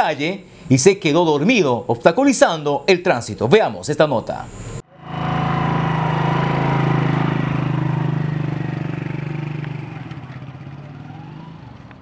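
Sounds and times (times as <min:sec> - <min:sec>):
small motorcycle engine running: 0:04.9 - 0:12.0.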